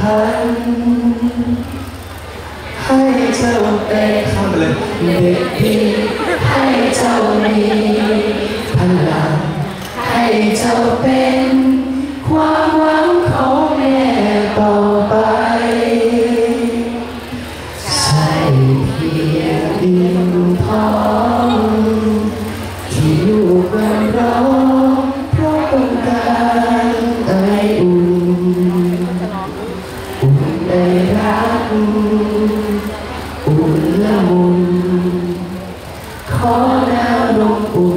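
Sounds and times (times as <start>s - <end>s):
man and woman singing a slow song: 0.0s - 1.9s, 2.8s - 37.9s.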